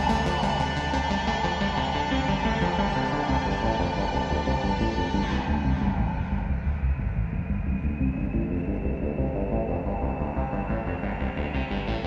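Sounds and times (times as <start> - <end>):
electronic prog rock: 0.0 - 12.0.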